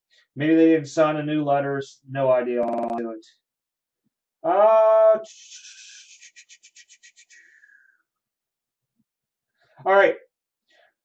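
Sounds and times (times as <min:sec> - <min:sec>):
person saying uh: 0:02.6 - 0:03.1.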